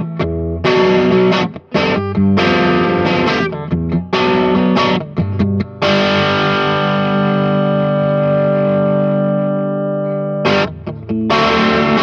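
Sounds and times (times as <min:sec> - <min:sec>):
overdriven electric guitar chords: 0:00.0 - 0:12.0.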